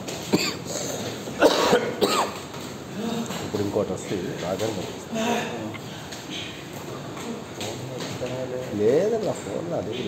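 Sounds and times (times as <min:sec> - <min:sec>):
person coughing: 0:00.3 - 0:02.4.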